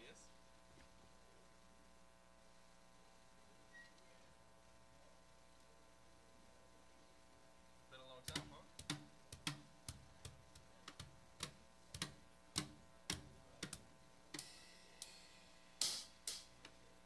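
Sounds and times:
drum hits: 8.3s - 14.7s.

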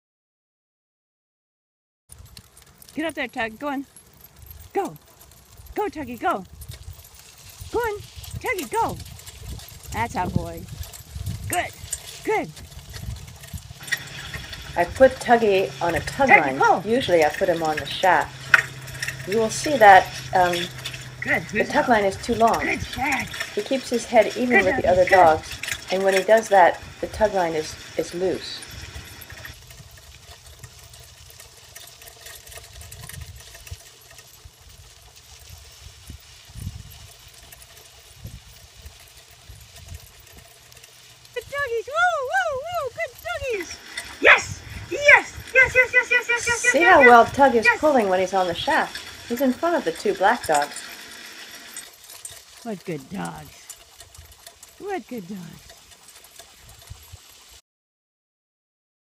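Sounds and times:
cart rolling on dirt road: 2.1s - 57.6s
person speaking: 3.0s - 3.9s, 5.8s - 6.5s, 7.7s - 9.0s, 11.5s - 12.6s, 13.9s - 18.5s, 19.1s - 28.6s, 41.4s - 50.8s, 52.6s - 53.7s, 54.8s - 55.6s.

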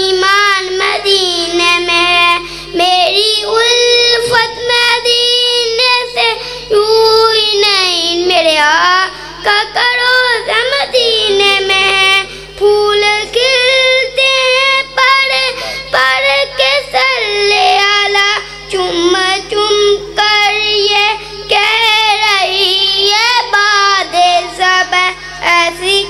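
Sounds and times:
boy singing into a microphone: 0.0s - 26.0s.

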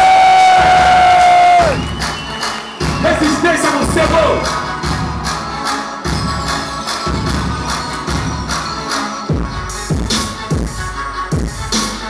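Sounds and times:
crowd noise: 0.0s - 10.5s
hip-hop beat: 0.0s - 12.0s
sliding whistle-like note: 1.2s - 3.4s
high thin whistle: 1.6s - 3.7s.

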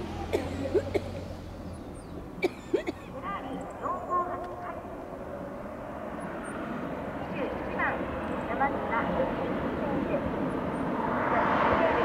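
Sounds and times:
sports car engine at speed: 0.0s - 8.8s
voices: 2.1s - 12.0s.

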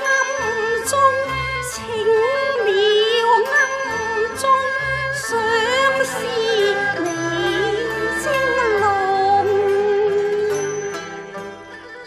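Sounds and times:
woman singing opera with vibrato: 0.0s - 10.9s
instruments holding steady notes: 0.4s - 12.0s.

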